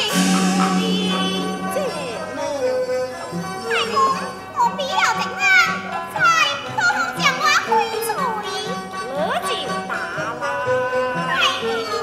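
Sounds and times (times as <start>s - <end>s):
instrumental accompaniment: 0.0s - 6.4s.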